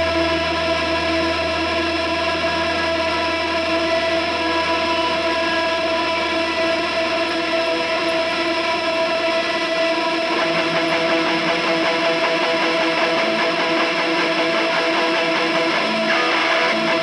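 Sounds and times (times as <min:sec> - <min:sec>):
electric guitars droning chord: 0:00.0 - 0:17.0
rhythmic guitar strumming: 0:00.0 - 0:17.0.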